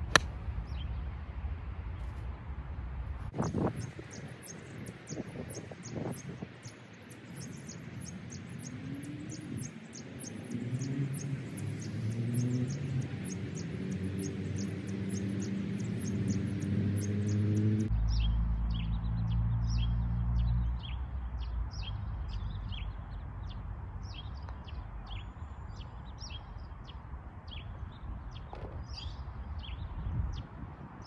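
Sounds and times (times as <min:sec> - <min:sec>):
small birds chirping: 0:03.4 - 0:31.0.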